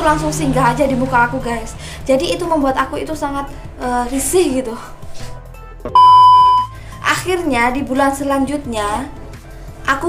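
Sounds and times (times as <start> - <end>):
quiet background music: 0.0 - 10.0
high-pitched electronic beep: 5.9 - 6.7.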